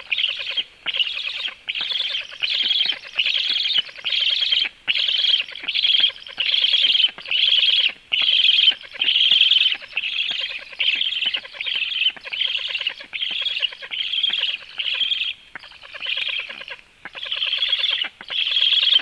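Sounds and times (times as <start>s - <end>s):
bird nestlings begging calls: 0.0s - 19.0s.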